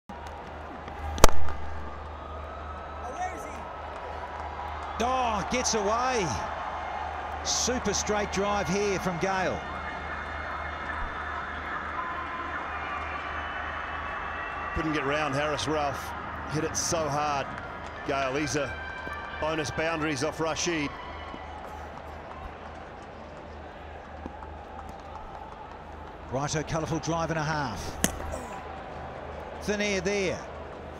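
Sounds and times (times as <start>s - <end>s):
stadium crowd hum: 0.1s - 30.9s
cricket bat striking ball: 1.1s - 1.9s, 27.9s - 28.5s.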